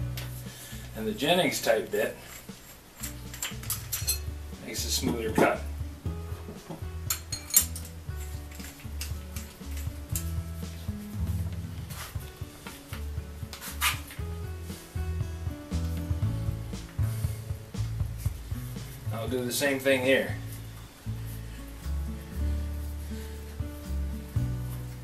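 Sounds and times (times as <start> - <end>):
background music with bass line: 0.0 - 2.4, 3.0 - 25.0
metal tools clinking on wood: 2.1 - 4.3, 6.5 - 10.4.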